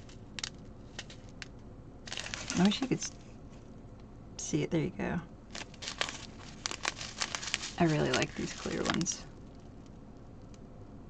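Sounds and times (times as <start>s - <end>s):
plastic bags crinkling: 2.1s - 3.2s, 5.5s - 9.6s.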